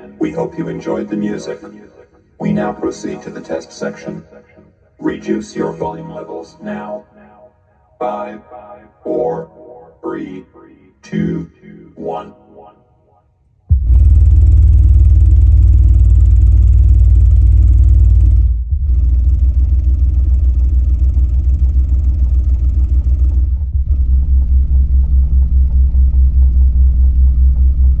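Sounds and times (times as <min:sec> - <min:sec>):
subwoofer deep rumbling test tones: 0:13.7 - 0:28.0.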